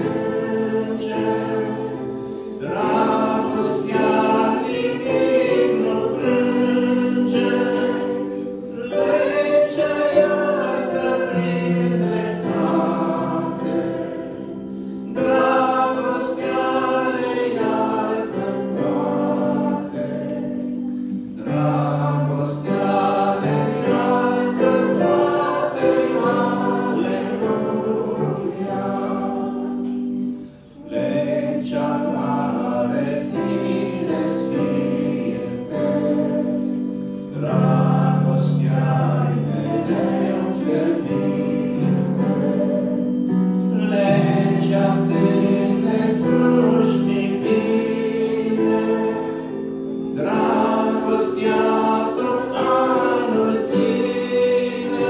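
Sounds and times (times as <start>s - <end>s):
man and woman singing a hymn: 0.0s - 55.0s.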